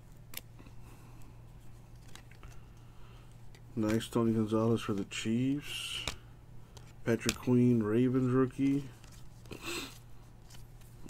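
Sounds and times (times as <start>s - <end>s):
steady low hum: 0.0s - 11.0s
trading cards rustling: 0.2s - 11.0s.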